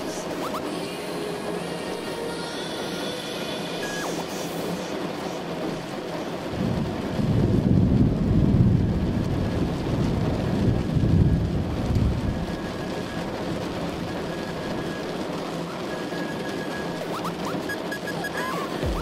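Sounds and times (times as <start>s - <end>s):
heavy rain: 0.0s - 19.0s
thunder rolling: 6.5s - 14.1s.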